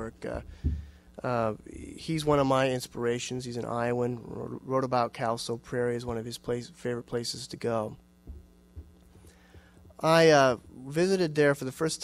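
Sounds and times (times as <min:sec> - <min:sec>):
faint steady hum: 0:00.0 - 0:12.0
soft low thumps: 0:00.4 - 0:01.0, 0:08.2 - 0:10.0.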